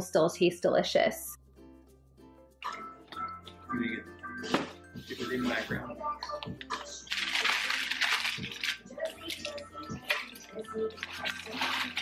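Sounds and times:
newspaper crumpling: 0:06.7 - 0:12.0.

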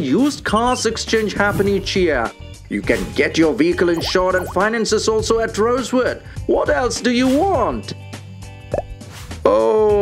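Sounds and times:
animation background music: 0:00.0 - 0:10.0
cartoon plop: 0:04.0 - 0:04.6.

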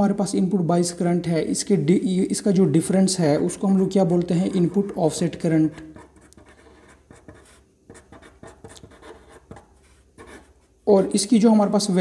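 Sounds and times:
pen scratching on paper: 0:03.3 - 0:10.7.

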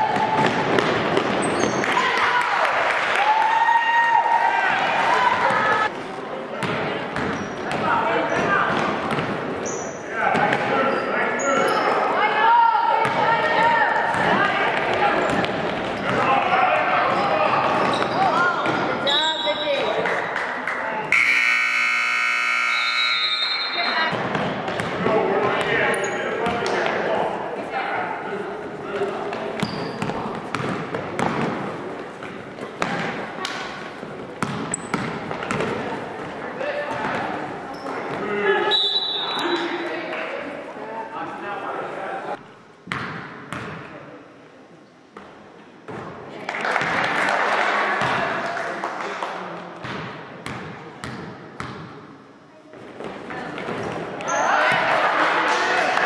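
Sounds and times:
voices echoing in gym: 0:00.0 - 0:56.0
scoreboard buzzer: 0:21.1 - 0:23.9
basketball bouncing on wooden floor: 0:29.6 - 0:31.6, 0:34.4 - 0:35.8.

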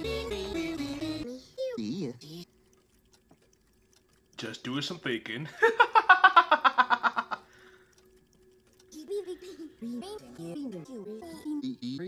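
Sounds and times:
man laughing hard: 0:05.6 - 0:07.4
soft voices: 0:08.9 - 0:12.0.

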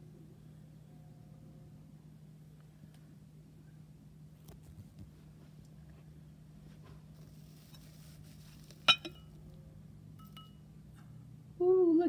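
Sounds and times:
glass lid clinking on jar rim: 0:08.9 - 0:09.3.

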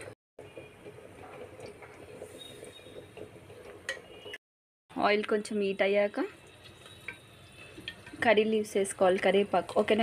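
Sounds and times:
oil crackling in a pan: 0:05.2 - 0:10.0.

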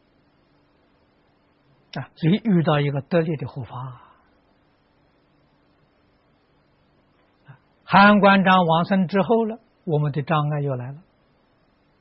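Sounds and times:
faint steady hum: 0:00.0 - 0:12.0
man's voice: 0:02.0 - 0:04.1, 0:07.9 - 0:11.0.

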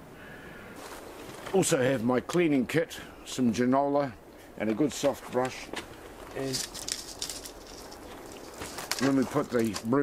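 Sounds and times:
sieve rattling: 0:06.3 - 0:09.9.

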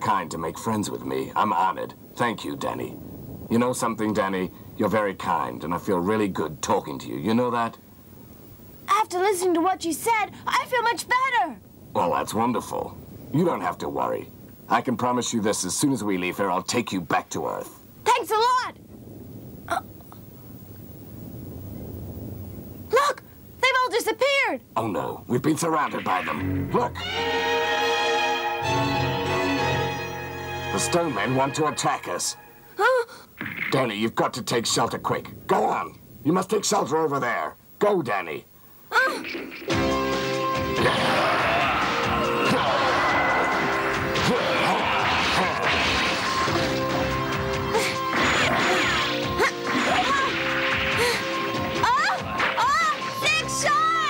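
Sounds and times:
background music with held notes: 0:26.4 - 0:32.8, 0:39.7 - 0:44.3
heavy blows: 0:39.7 - 0:53.8
rock smashing crashes: 0:43.9 - 0:47.5, 0:48.1 - 0:53.6.

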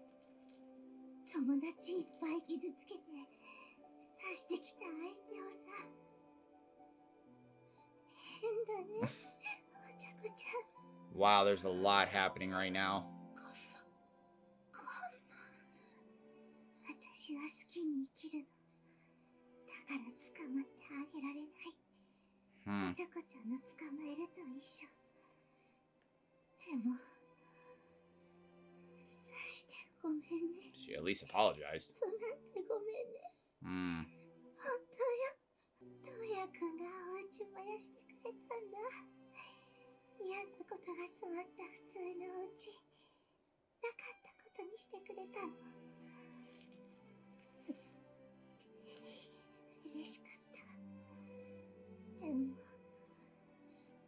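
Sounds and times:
woman speaking: 0:01.3 - 0:05.9, 0:08.2 - 0:10.7, 0:14.8 - 0:15.5, 0:16.9 - 0:18.4, 0:19.7 - 0:21.7, 0:23.0 - 0:24.9, 0:26.6 - 0:27.0, 0:29.1 - 0:30.7, 0:32.0 - 0:33.2, 0:34.6 - 0:35.3, 0:36.1 - 0:39.0, 0:40.2 - 0:42.8, 0:43.8 - 0:45.5, 0:49.9 - 0:50.4, 0:52.2 - 0:52.6.

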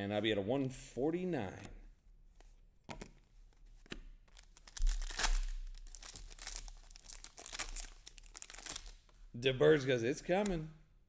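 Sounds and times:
wrapper tearing and crinkling: 0:04.3 - 0:09.1.

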